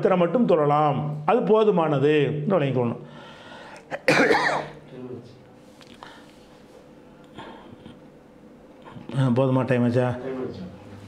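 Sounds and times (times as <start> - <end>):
man coughing: 3.9 - 4.8.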